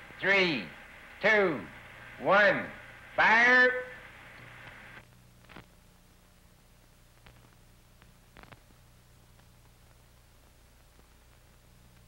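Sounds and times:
film soundtrack hiss and hum: 0:00.0 - 0:12.0.

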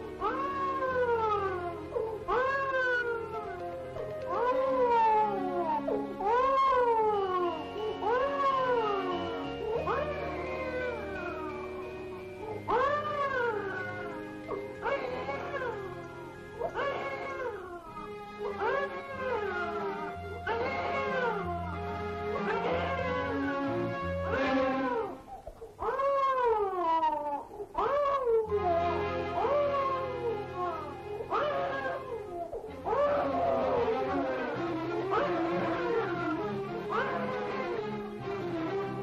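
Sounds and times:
background music of held notes: 0:00.0 - 0:39.0.

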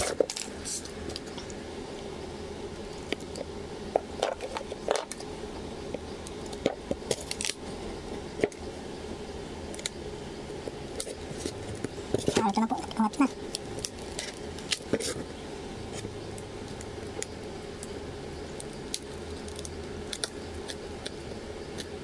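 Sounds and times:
low background hum: 0:00.0 - 0:22.0.

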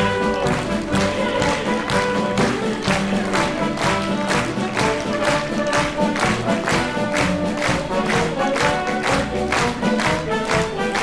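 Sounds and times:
orchestra playing operetta tune: 0:00.0 - 0:11.0.

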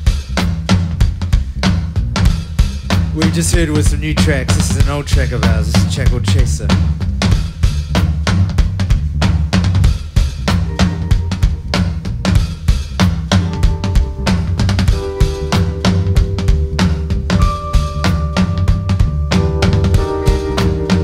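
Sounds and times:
drum kit beat: 0:00.0 - 0:21.0
heavy bass line: 0:00.0 - 0:21.0
held chord notes: 0:10.6 - 0:21.0.

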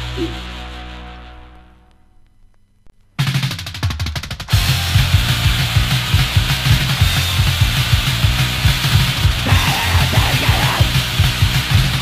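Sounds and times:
fast drum beat with bass: 0:03.2 - 0:12.0
shouted vocal: 0:09.4 - 0:11.0.

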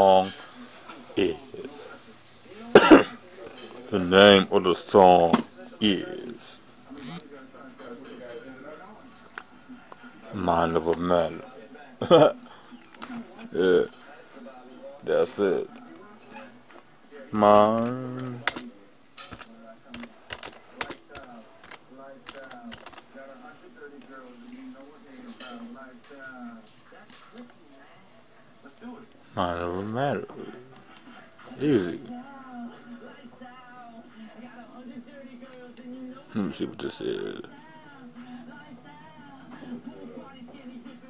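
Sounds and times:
faint background voices: 0:00.0 - 0:41.0
person coughing: 0:02.7 - 0:03.2.

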